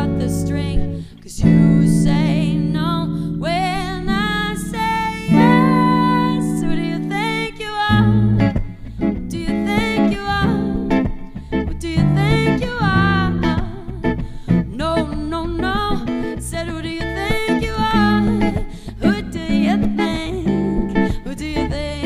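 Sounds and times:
electric and acoustic guitars: 0.0s - 22.0s.

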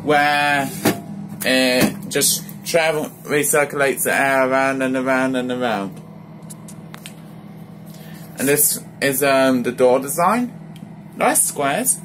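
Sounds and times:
fridge freezer humming: 0.0s - 12.0s.

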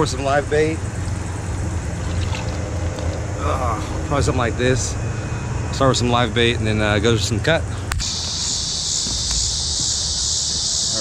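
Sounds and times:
low outdoor rumble: 0.0s - 8.0s.

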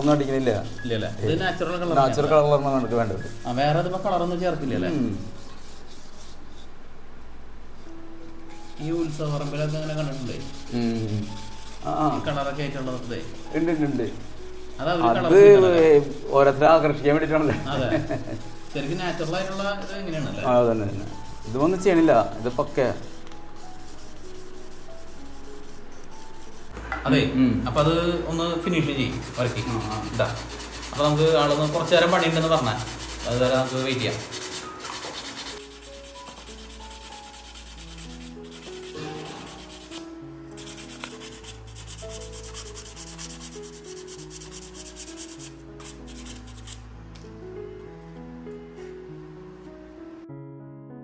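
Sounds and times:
hand scraping bamboo flute: 8.7s - 16.4s, 29.2s - 46.8s.

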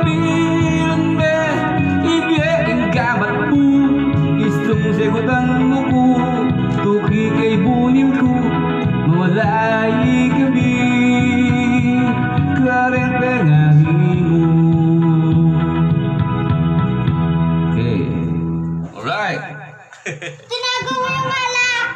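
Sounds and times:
man singing into microphone: 0.0s - 16.2s
karaoke backing music: 0.0s - 21.9s.

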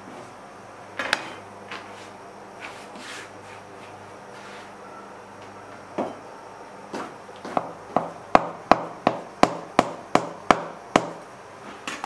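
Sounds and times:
cleaver chopping on wooden board: 7.5s - 11.2s.

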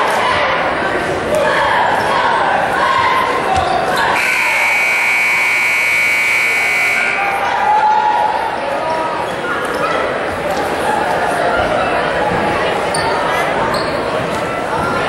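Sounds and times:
court noise: 0.0s - 15.0s
crowd chatter: 0.0s - 15.0s
high-pitched scoreboard buzzer: 4.2s - 7.2s.

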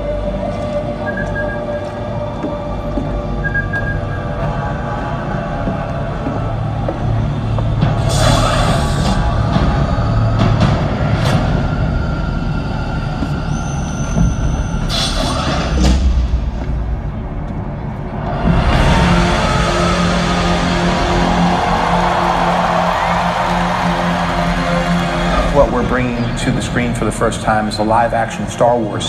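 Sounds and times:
dark film score: 0.0s - 29.0s
heavy low rumble: 4.0s - 29.0s.

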